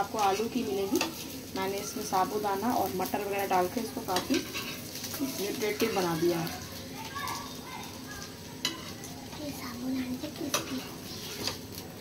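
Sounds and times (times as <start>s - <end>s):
frying sizzle: 0.0s - 12.0s.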